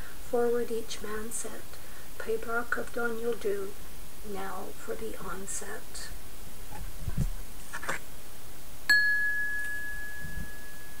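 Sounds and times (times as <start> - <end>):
faint soft noises: 0.0 - 8.5
bell-like ding: 8.9 - 11.0.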